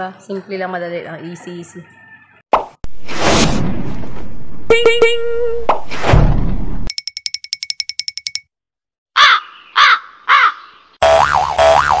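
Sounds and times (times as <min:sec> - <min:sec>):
bell-like pings: 0:06.9 - 0:08.5
crow caws: 0:09.2 - 0:10.8.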